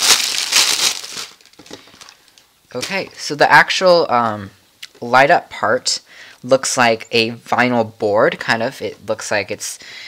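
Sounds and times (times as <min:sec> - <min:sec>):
plastic bag crinkling: 0:00.0 - 0:02.5.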